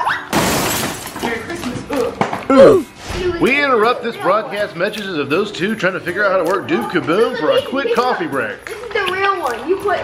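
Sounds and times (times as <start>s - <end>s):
child's voice: 8.7s - 10.0s.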